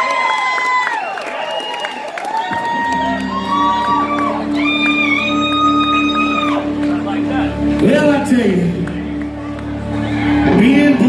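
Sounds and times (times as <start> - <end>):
audience whistling and whooping: 0.0 - 6.9.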